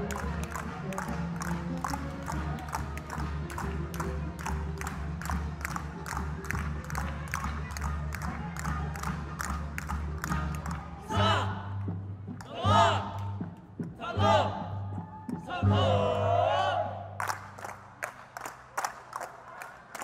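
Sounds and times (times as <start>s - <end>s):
backing music with low bass: 0.0s - 18.5s.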